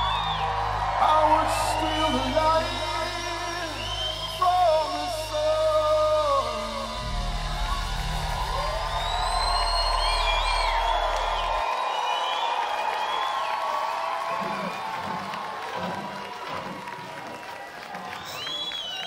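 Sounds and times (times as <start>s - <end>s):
crowd cheering and whistling: 0.0s - 19.0s.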